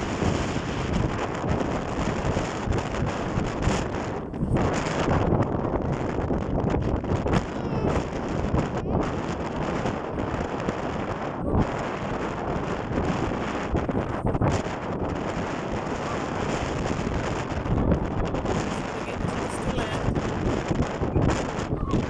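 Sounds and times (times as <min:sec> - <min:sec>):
wind buffeting microphone: 0:00.0 - 0:22.0.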